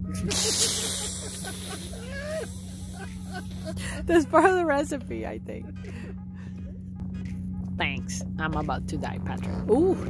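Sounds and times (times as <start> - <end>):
fizzing hiss: 0.3 - 3.1.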